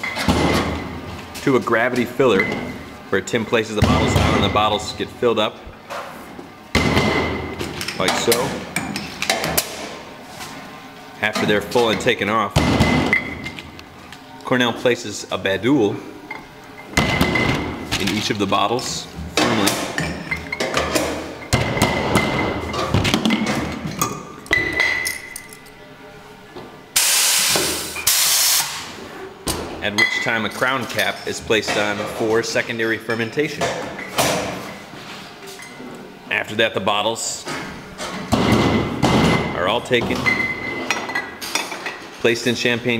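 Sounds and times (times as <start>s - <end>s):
glass bottles clinking: 2.3s - 2.9s, 19.4s - 25.8s, 29.9s - 31.8s, 38.3s - 42.1s
compressed air hisses: 27.0s - 28.9s.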